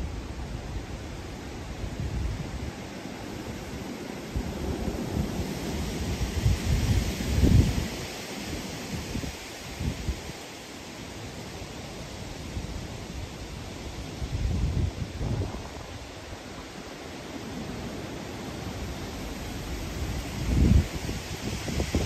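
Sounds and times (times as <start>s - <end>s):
gusty wind through trees: 0.0s - 22.0s
wind buffeting microphone: 1.6s - 10.4s, 11.9s - 16.8s, 17.4s - 22.0s.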